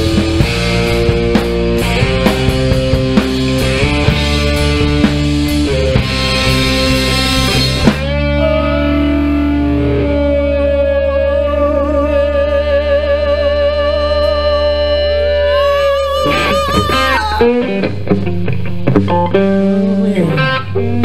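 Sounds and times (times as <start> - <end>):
live rock band playing: 0.0 - 10.9, 15.4 - 20.6.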